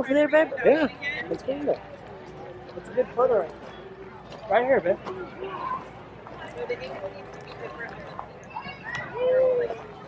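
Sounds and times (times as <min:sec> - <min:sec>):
outdoor background noise: 0:00.0 - 0:10.0
people chattering: 0:00.0 - 0:10.0
footsteps on dirt path: 0:01.3 - 0:09.1.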